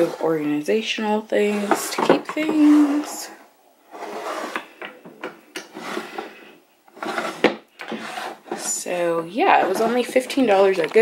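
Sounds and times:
wooden drawers sliding: 1.4s - 3.3s, 3.9s - 9.0s.

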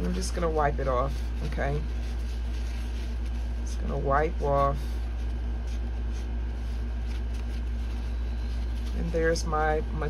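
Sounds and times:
paper towel rubbing and rustling: 0.0s - 10.0s
steady low hum: 0.0s - 10.0s.

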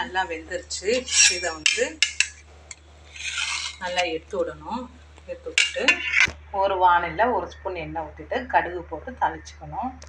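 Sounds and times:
person speaking: 0.0s - 2.4s, 3.2s - 7.6s
metal spatula scraping steel pan: 0.8s - 2.4s, 3.1s - 4.2s, 5.4s - 6.3s.

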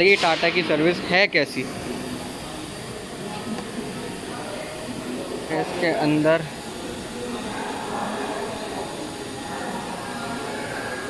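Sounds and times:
workshop hiss-like hum: 0.0s - 11.0s.

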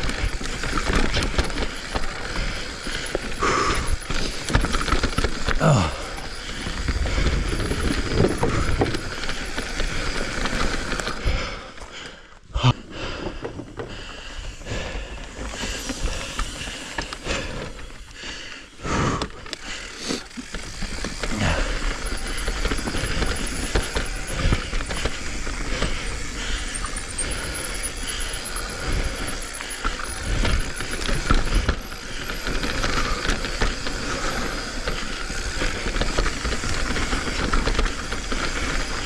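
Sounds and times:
bike rattling over bumps: 0.0s - 39.0s
bike tyres rolling over dirt: 0.0s - 39.0s.

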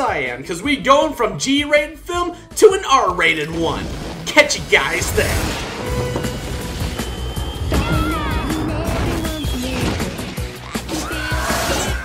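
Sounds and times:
film soundtrack music: 0.0s - 12.0s
rushing blast of rides: 3.7s - 12.0s
falling whistle-like tones: 5.8s - 10.2s.

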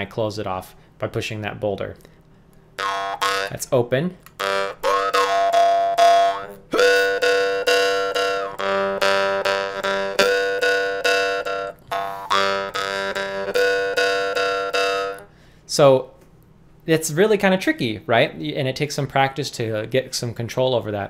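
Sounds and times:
jaw harp buzzing drone: 2.8s - 3.7s, 4.3s - 15.3s.

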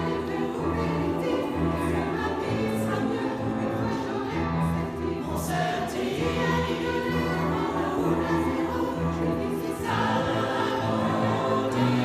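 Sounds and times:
choir singing in a church: 0.0s - 12.0s.

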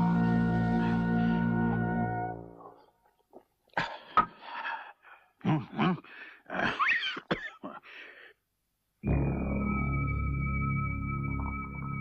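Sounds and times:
person coughing: 3.7s - 4.6s, 5.4s - 7.9s.

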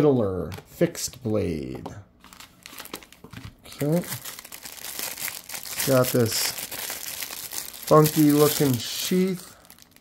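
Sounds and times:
plastic bag crinkling: 2.2s - 10.0s.

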